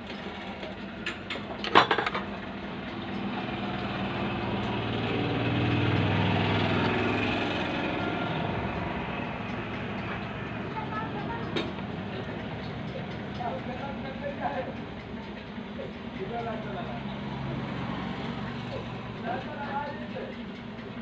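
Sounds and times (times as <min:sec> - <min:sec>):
low engine-like drone: 0:00.0 - 0:21.0
sharp clicks and rattles: 0:00.1 - 0:02.5, 0:09.1 - 0:16.9.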